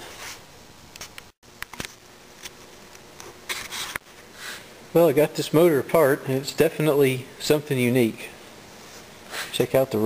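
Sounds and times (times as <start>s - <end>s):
handling noise rubbing and scraping: 0.0s - 1.2s, 3.2s - 4.7s, 8.7s - 9.7s.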